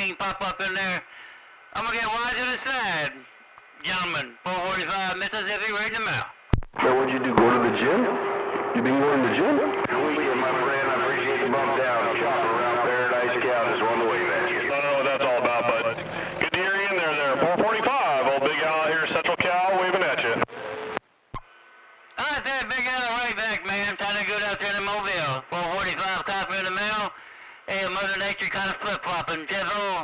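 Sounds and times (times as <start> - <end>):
men talking over radio speaker: 0.0 - 20.5, 22.2 - 30.0.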